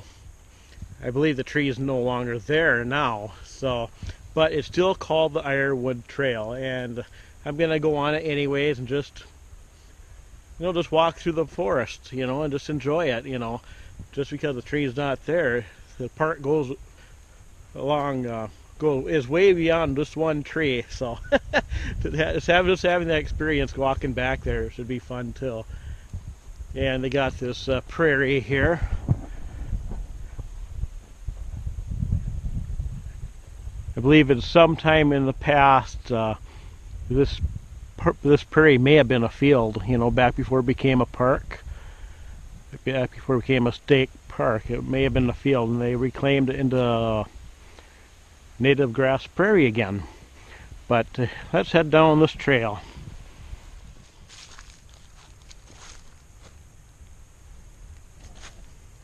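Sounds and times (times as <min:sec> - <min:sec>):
faint low rumble: 0:00.0 - 0:59.0
wind rumble: 0:19.0 - 0:38.1, 0:52.2 - 0:59.0
microphone handling: 0:25.6 - 0:34.0, 0:57.9 - 0:58.8
footsteps on woodland trail: 0:27.8 - 0:33.7, 0:52.6 - 0:57.2, 0:57.8 - 0:59.0
soft rustling: 0:52.7 - 0:57.2, 0:57.9 - 0:59.0.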